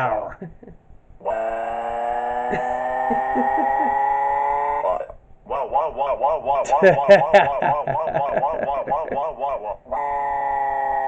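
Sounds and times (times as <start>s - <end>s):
synthesized cartoon voice crying: 0.0s - 0.7s, 2.5s - 4.2s, 5.5s - 9.8s.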